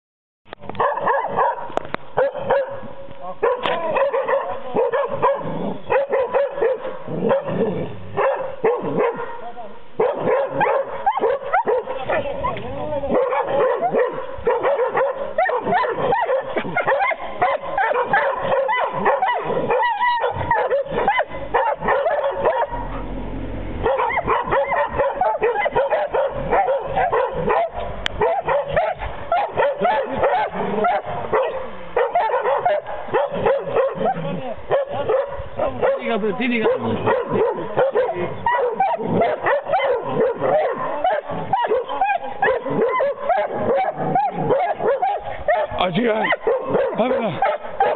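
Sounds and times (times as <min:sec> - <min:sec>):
dogs barking and yipping: 0:00.6 - 0:47.9.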